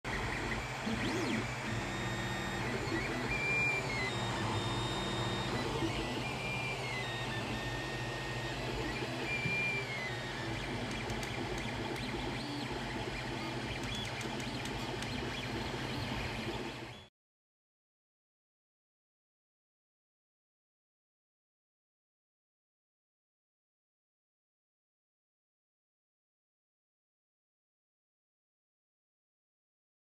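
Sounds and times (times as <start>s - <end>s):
cooling fans humming: 0.1s - 16.7s
stepper motors whining: 0.1s - 17.0s.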